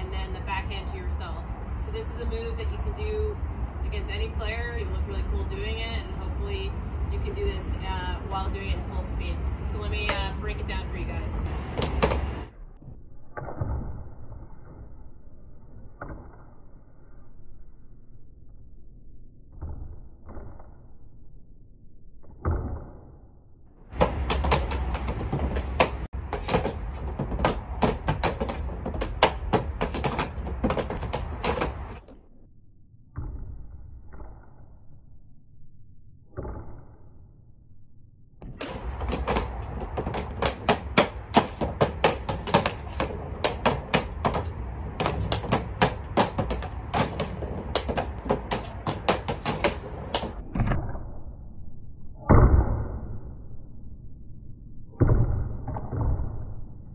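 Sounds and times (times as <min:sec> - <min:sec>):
hockey stick tapping a ball: 0:38.6 - 0:50.4.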